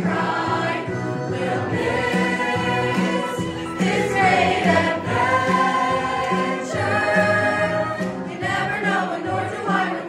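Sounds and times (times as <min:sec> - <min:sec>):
choir singing in harmony: 0:00.0 - 0:10.0.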